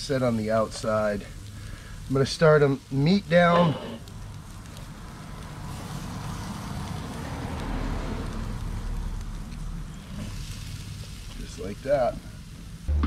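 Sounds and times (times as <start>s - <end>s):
food sizzling on a grill: 0.0s - 12.9s.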